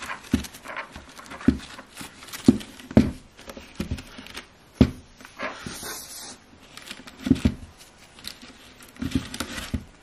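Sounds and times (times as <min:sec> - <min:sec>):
soft brushing: 0:05.2 - 0:06.8.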